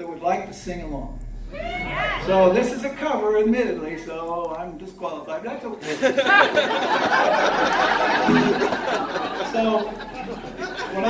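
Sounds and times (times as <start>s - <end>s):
man speaking: 0.0s - 1.4s, 2.2s - 5.9s, 9.4s - 11.0s.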